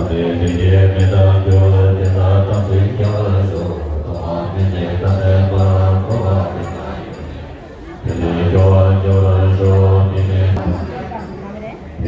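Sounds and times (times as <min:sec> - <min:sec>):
monks chanting in low voices: 0:00.0 - 0:11.4.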